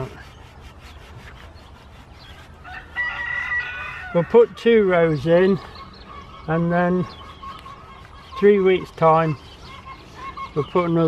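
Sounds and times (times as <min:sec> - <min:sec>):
rooster crowing: 0:02.6 - 0:04.4.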